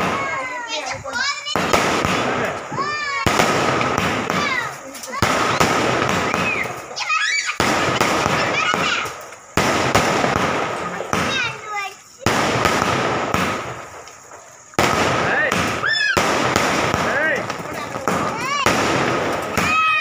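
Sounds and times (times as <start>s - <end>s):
fireworks bursting with crackling: 0.0s - 20.0s.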